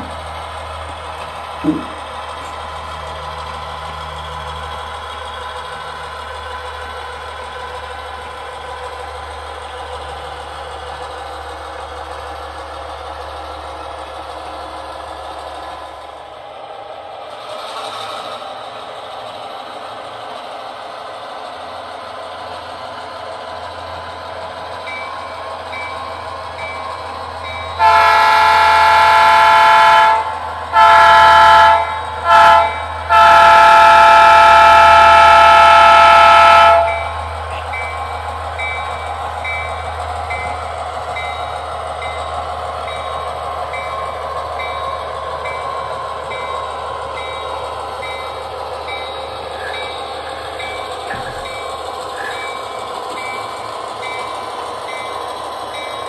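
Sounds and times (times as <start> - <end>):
locomotive horn: 27.8 - 37.7.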